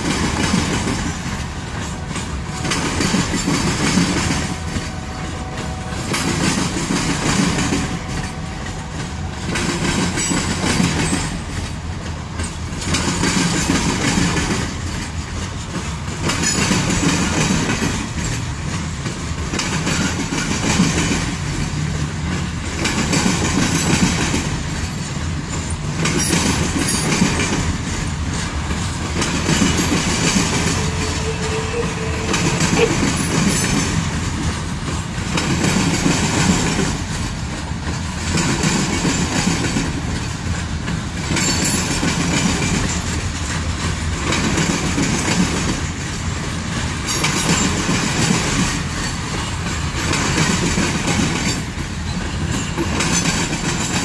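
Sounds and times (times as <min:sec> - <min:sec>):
freight train wheels clattering: 0:00.0 - 0:54.0.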